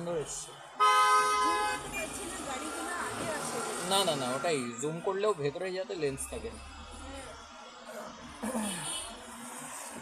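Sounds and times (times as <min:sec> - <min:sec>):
traffic noise: 0:00.0 - 0:10.0
voices: 0:00.0 - 0:10.0
vehicle horn honking: 0:00.8 - 0:02.2.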